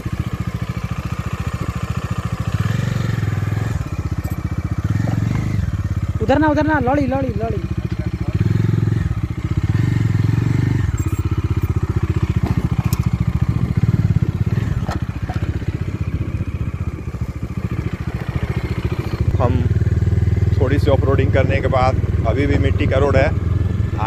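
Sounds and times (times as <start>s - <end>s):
motorcycle engine running: 0.0s - 24.0s
sharp knocks and rattles: 11.0s - 15.9s.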